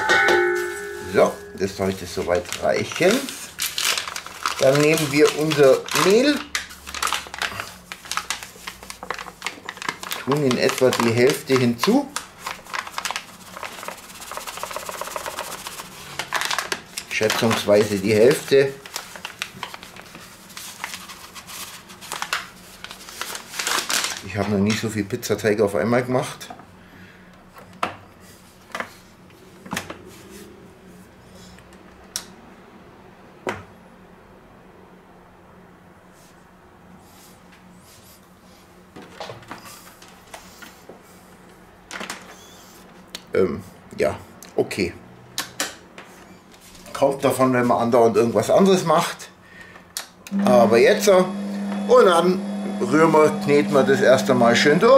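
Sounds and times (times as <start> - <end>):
paper bag crinkling: 1.2 - 24.8
faint steady hum: 49.4 - 54.9.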